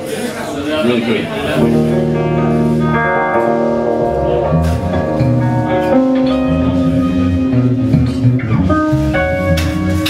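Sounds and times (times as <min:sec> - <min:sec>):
electric guitar: 0:01.3 - 0:10.0
held keyboard chords: 0:01.4 - 0:10.0.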